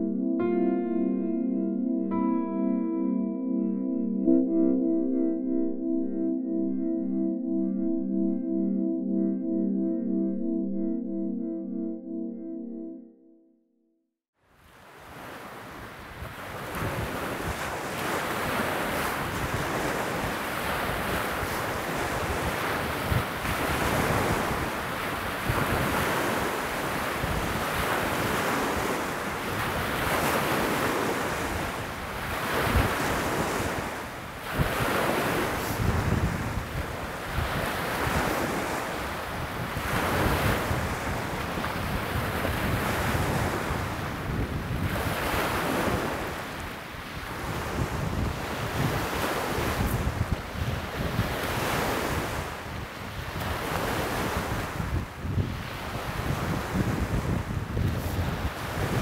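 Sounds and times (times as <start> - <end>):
wind gusting on microphone: 15.1 - 59.0.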